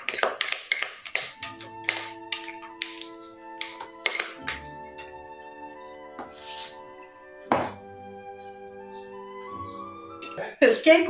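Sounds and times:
spatula scraping cake batter: 0.0s - 7.0s
background music: 1.1s - 11.0s.

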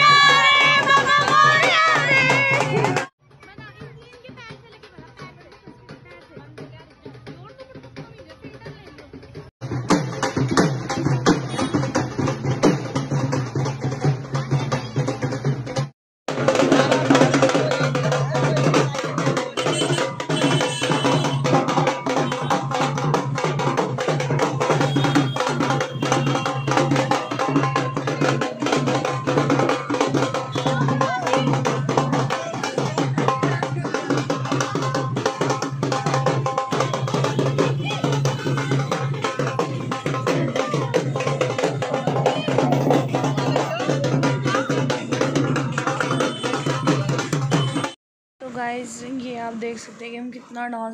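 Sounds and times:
crowd voices: 0.0s - 9.5s, 16.4s - 48.0s
dhol drums fast rhythm: 0.0s - 49.8s.

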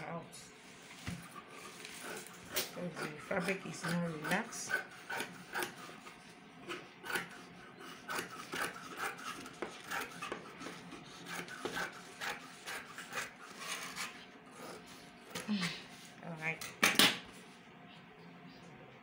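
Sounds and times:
scissors cutting fabric: 6.7s - 15.5s.

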